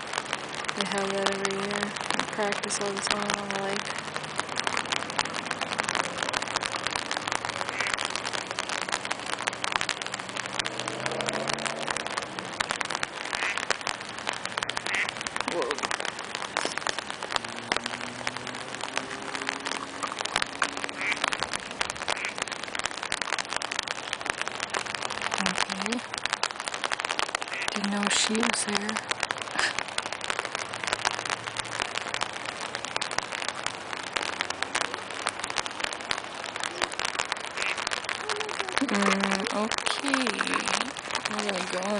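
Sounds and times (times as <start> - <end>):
rain pattering on an umbrella: 0.0 - 41.9
faint voices: 15.4 - 17.1, 36.6 - 37.2, 38.0 - 41.9.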